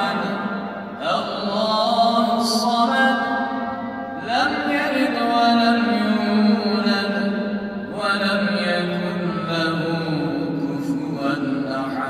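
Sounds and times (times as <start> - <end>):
man chanting recitation: 0.0 - 3.6, 4.2 - 12.0.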